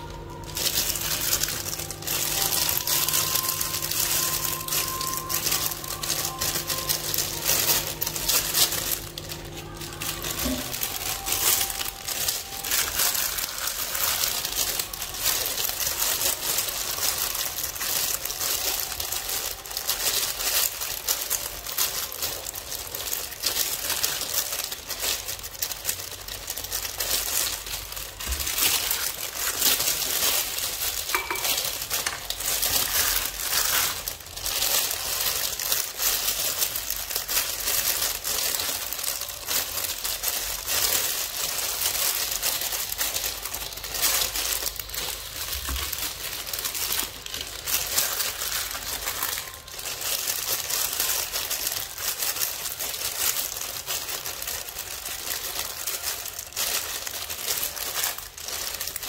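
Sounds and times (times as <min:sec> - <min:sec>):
food filling mixed by hand: 0:00.0 - 0:59.0
plastic glove crinkling: 0:00.0 - 0:59.0.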